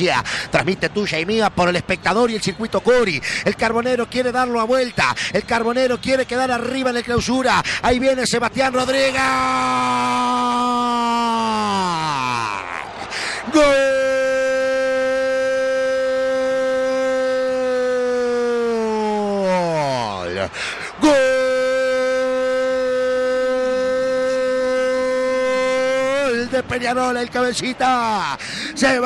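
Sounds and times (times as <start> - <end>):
quick breath: 0.2 - 0.5, 3.2 - 3.5, 7.6 - 7.8, 13.0 - 13.5, 20.5 - 21.0, 28.4 - 28.8
commentator's long goal cry: 9.1 - 26.4.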